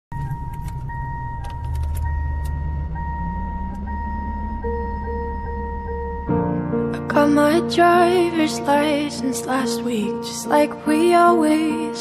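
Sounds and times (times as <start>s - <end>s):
electronic warning chime: 0.1s - 6.6s
low engine rumble: 0.1s - 10.1s.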